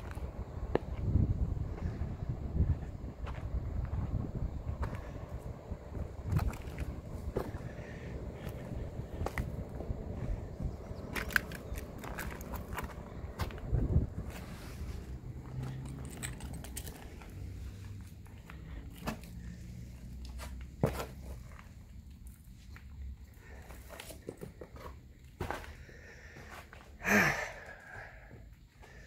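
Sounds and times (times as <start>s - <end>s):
low rumble: 0.0s - 18.8s
footsteps crunching over rubble: 0.0s - 19.6s, 20.2s - 27.1s.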